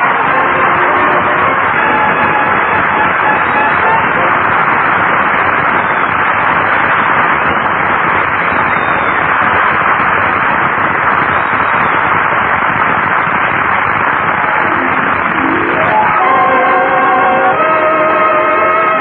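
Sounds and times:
audience applauding: 0.0 - 19.0.

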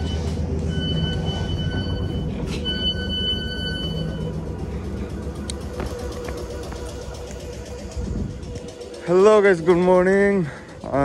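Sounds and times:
electric train rumble: 0.0 - 11.0
faint hum: 0.0 - 11.0.

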